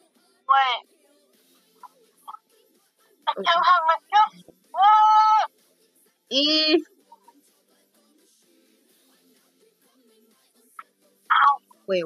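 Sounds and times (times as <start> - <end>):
person making squeaky vocal sounds: 3.3 - 5.5, 11.3 - 11.7.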